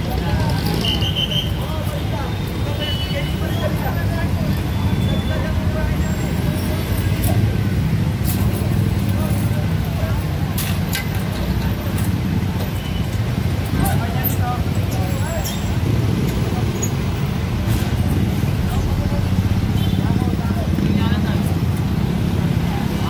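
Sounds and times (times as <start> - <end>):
crowd chatter: 0.0 - 23.0
traffic rumble: 0.0 - 23.0.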